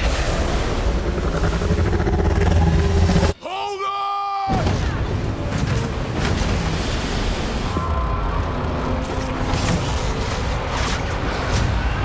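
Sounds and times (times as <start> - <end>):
wind: 0.0 - 12.0
waves crashing: 4.7 - 8.2
water rushing: 4.8 - 9.5.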